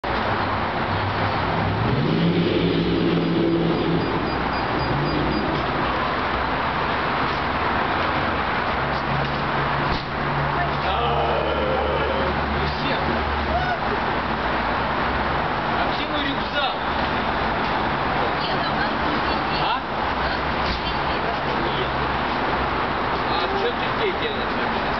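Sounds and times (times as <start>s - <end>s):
traffic rush: 0.0s - 24.9s
vehicle engine hum: 0.0s - 24.9s
indistinct voices talking: 10.4s - 14.2s.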